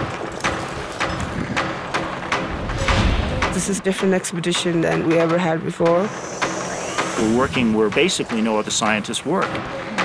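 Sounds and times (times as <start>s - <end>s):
steady rushing noise: 6.2s - 10.0s.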